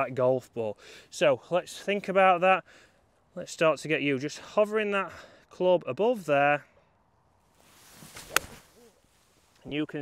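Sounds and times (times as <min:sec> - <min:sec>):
golf club swish: 0:07.6 - 0:09.6
club striking golf ball: 0:08.2 - 0:08.6.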